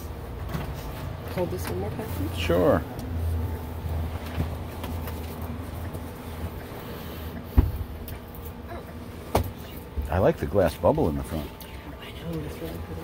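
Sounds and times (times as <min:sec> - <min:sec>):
van engine and road rumble: 0:00.0 - 0:10.9.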